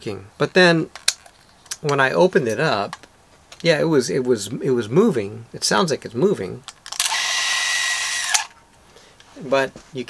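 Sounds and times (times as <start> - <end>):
camera motor whirring: 7.0 - 8.6.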